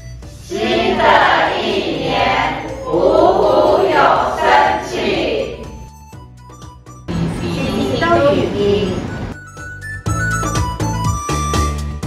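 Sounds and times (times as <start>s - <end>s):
background music: 0.0s - 12.0s
many voices calling in unison: 0.4s - 5.7s.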